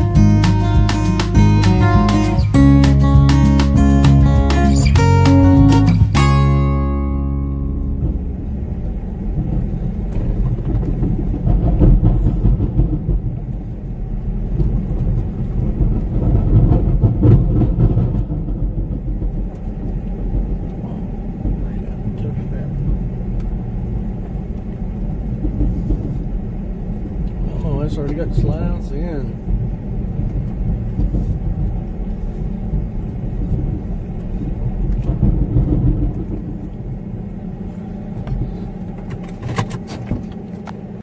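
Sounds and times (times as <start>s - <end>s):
strummed acoustic guitar music: 0.0s - 8.7s
vehicle engine and road noise: 0.0s - 41.0s.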